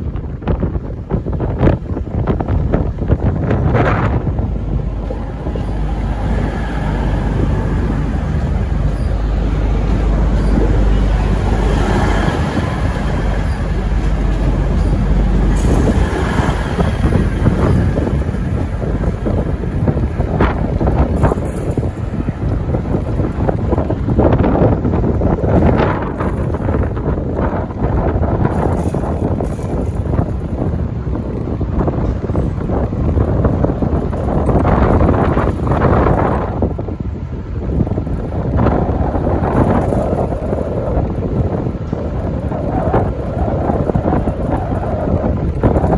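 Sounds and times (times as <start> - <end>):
diesel train passing: 0.0 - 45.9
train wheels clattering over rail joints: 0.0 - 45.9
wind rumble on microphone: 0.0 - 45.9.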